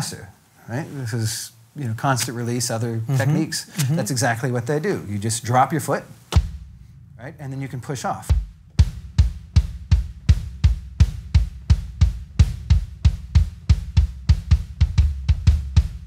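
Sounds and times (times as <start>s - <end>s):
bass drum pedal strokes: 5.0s - 16.0s.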